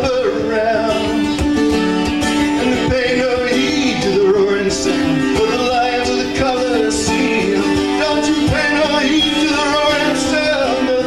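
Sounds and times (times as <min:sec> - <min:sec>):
man singing: 0:00.0 - 0:01.5, 0:02.2 - 0:11.0
strummed acoustic guitar: 0:00.0 - 0:11.0.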